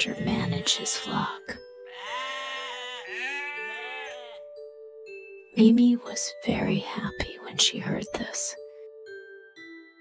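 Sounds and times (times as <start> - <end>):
soft background music: 0.0 - 10.0
sheep bleating: 1.9 - 4.4.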